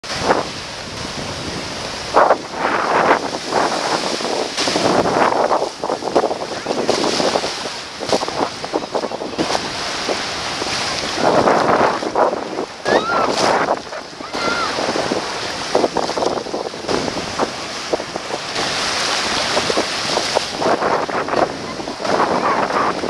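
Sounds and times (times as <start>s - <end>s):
sea water sloshing and splashing: 0.0s - 23.0s.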